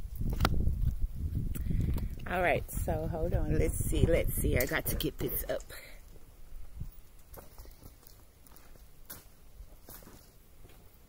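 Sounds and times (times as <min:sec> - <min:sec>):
faint footsteps: 0:00.1 - 0:11.0.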